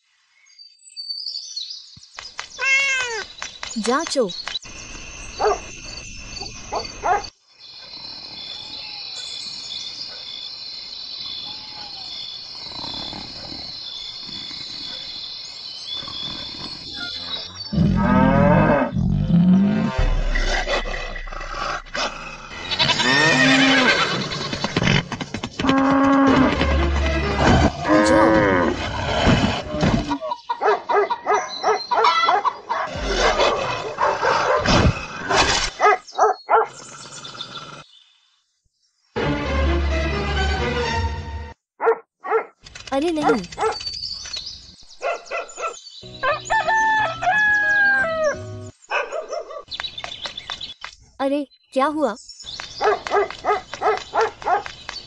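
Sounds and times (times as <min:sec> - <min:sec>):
big cat roaring: 0:17.0 - 0:23.9
music: 0:26.6 - 0:27.8, 0:39.2 - 0:41.6, 0:48.0 - 0:48.7.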